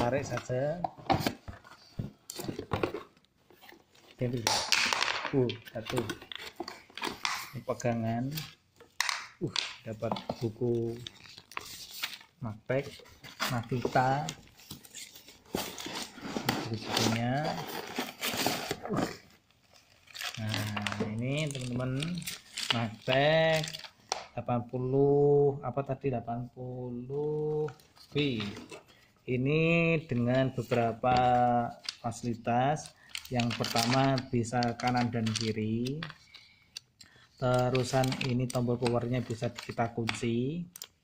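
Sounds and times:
person speaking: 0:00.0 - 0:01.4, 0:04.2 - 0:08.6, 0:09.2 - 0:19.3, 0:20.2 - 0:36.2, 0:37.4 - 0:40.9
plastic packaging crinkling and tearing: 0:17.4 - 0:24.0.

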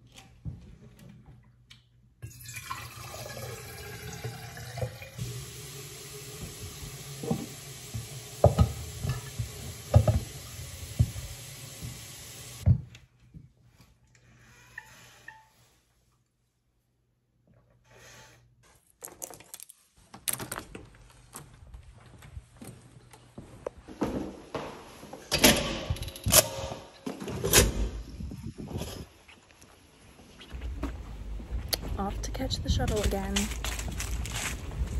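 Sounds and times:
water pouring into metal bottle: 0:02.2 - 0:09.4.

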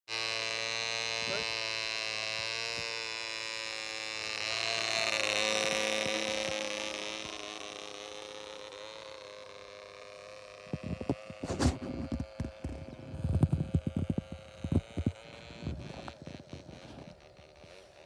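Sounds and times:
model plane engine buzzing: 0:00.0 - 0:18.0
low thumps and rumbles: 0:10.7 - 0:17.2.

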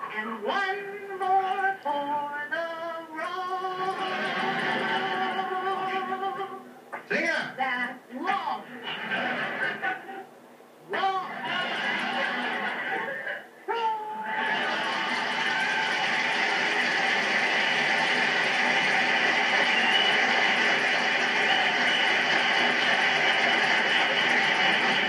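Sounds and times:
studio audience applause: 0:03.8 - 0:05.5, 0:11.3 - 0:13.2, 0:14.2 - 0:25.0
audience laughter: 0:03.9 - 0:06.1, 0:08.8 - 0:10.3, 0:11.3 - 0:13.4, 0:14.2 - 0:25.0.

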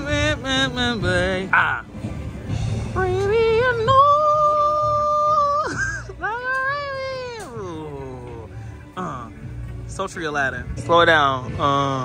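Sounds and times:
woman singing wordless notes: 0:02.9 - 0:08.2.

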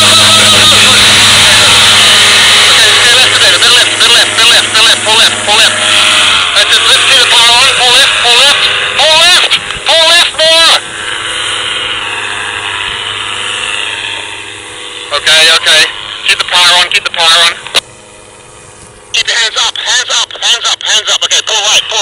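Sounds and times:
steady noise: 0:00.0 - 0:22.0.

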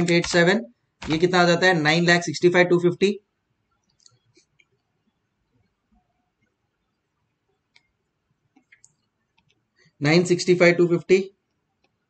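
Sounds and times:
person speaking: 0:00.0 - 0:03.2, 0:10.0 - 0:11.3
faint small clicks: 0:03.8 - 0:04.9, 0:07.7 - 0:09.9.

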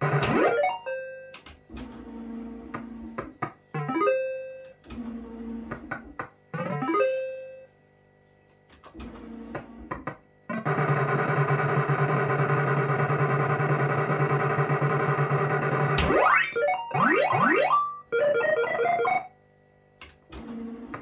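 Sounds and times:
fruit machine electronic tones: 0:00.0 - 0:01.4, 0:03.8 - 0:04.8, 0:06.6 - 0:07.7, 0:10.6 - 0:19.4.

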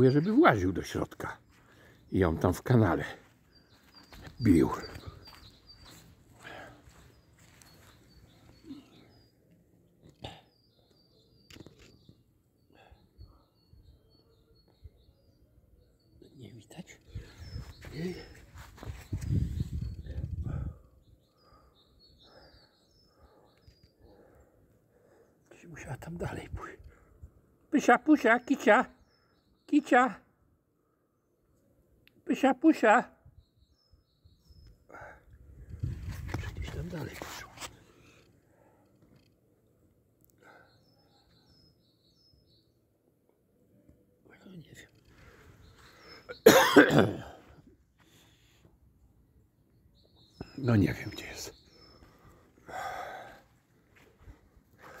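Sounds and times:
faint bird chirps: 0:00.0 - 0:27.2, 0:33.2 - 0:48.7, 0:49.7 - 0:55.0
microphone rustling on grass: 0:17.4 - 0:20.2
high bird chirps: 0:44.5 - 0:46.8
person coughing: 0:46.3 - 0:47.4.

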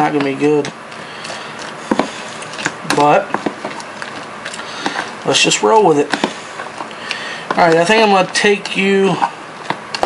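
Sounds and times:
spoon scraping wet food: 0:00.2 - 0:09.4.

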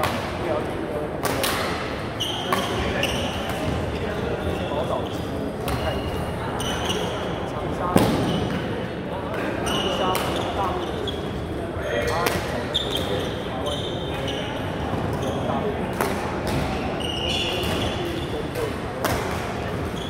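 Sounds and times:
chatter of players: 0:00.0 - 0:20.0
shoes squeaking on court floor: 0:02.2 - 0:07.4, 0:09.4 - 0:15.8, 0:16.6 - 0:18.7, 0:19.8 - 0:20.0.

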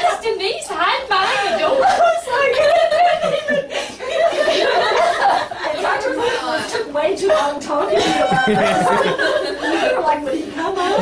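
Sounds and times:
excited voices: 0:00.0 - 0:11.0
people laughing: 0:01.2 - 0:11.0.

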